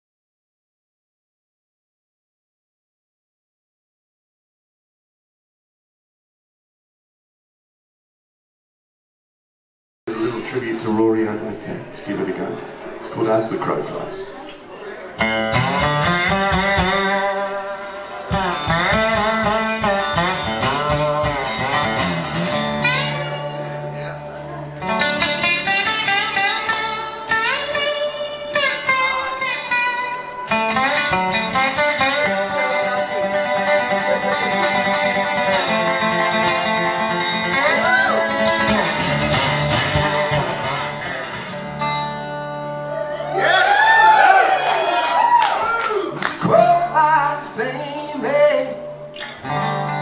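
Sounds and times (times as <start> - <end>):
resonator guitar blues picking: 15.1 - 43.4, 46.4 - 50.0
man singing: 46.3 - 49.0.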